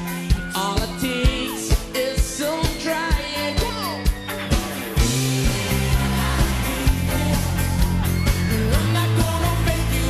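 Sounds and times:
guitar: 0.0 - 10.0
live pop band music: 0.0 - 10.0.

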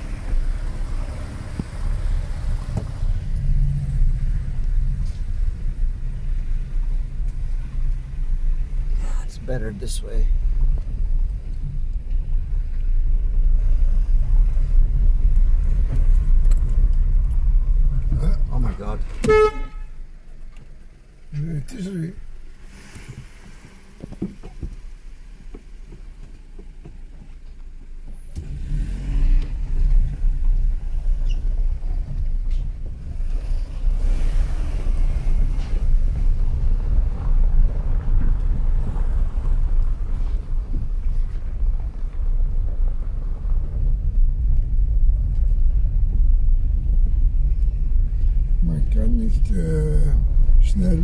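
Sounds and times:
car engine and road noise: 0.0 - 51.0.

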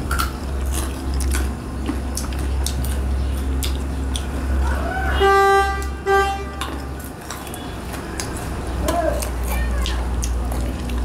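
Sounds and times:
steady low hum: 0.0 - 11.0
vehicle horn honking: 5.2 - 7.0.

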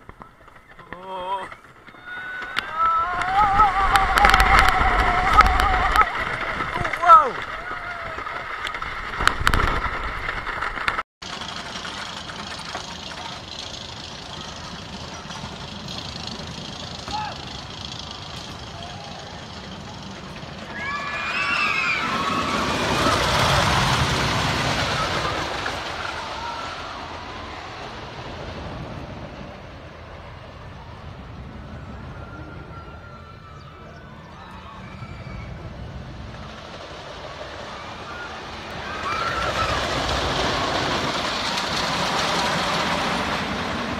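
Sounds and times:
on-board ride noise: 0.0 - 43.9
roller coaster rumbling on track: 0.0 - 43.9
riders screaming: 0.8 - 8.9, 14.2 - 28.0, 31.5 - 43.9.

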